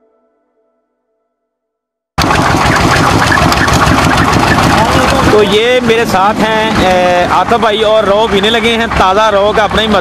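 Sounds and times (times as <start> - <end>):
stationary engine running: 2.2 - 10.0.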